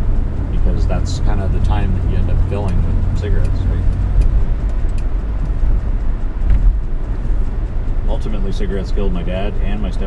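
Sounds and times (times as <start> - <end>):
car engine drone: 0.0 - 10.0
road noise inside car: 0.0 - 10.0.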